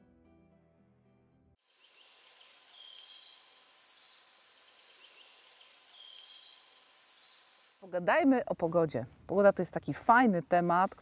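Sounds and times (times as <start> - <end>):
steady outdoor hiss: 1.6 - 11.0
songbird singing high whistled notes: 1.8 - 7.7.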